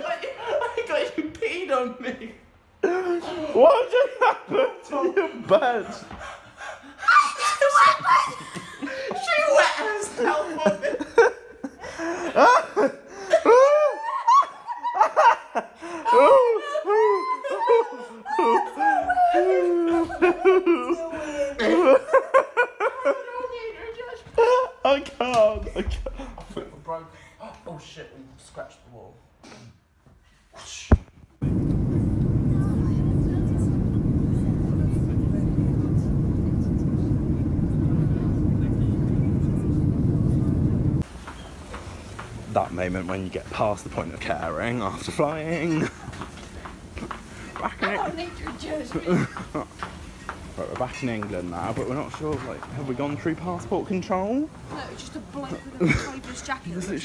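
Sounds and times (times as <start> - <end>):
young women laughing: 6.8 - 24.8, 47.5 - 49.8, 55.4 - 56.4
vehicle interior rumble: 31.4 - 41.0.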